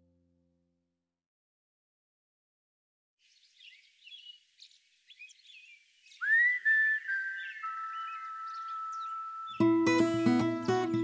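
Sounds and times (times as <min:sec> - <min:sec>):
faint birdsong chirps: 0:03.2 - 0:11.0
person whistling a slow melody: 0:06.2 - 0:09.7.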